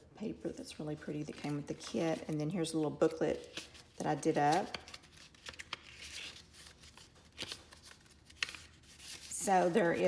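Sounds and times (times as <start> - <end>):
paper pages rustling: 1.1 - 10.0.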